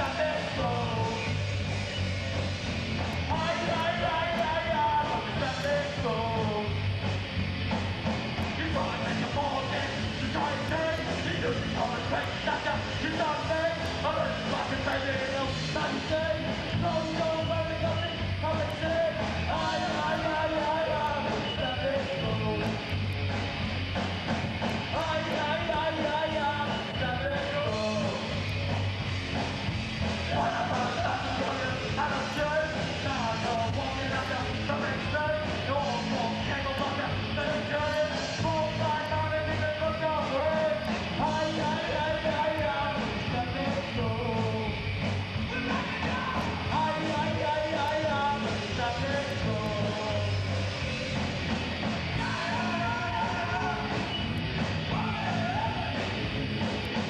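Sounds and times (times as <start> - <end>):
live rock band playing: 0.0 - 57.0
vocalist singing loudly: 3.3 - 6.8, 30.3 - 44.8, 45.4 - 51.4, 52.2 - 54.2, 54.8 - 56.2.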